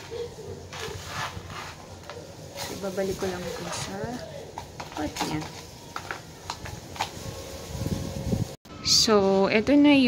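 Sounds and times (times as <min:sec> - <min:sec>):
trowel scraping soil: 0:00.7 - 0:04.1.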